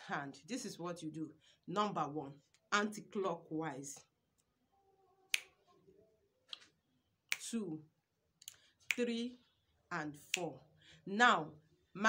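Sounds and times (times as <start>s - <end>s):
finger snap: 5.3s - 5.6s, 6.5s - 6.7s, 7.3s - 7.6s.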